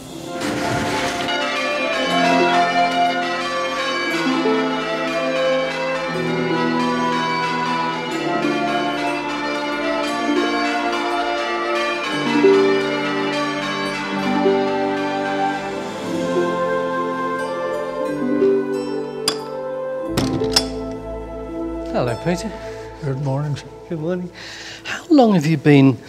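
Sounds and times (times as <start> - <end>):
church bells pealing: 0.0 - 25.6.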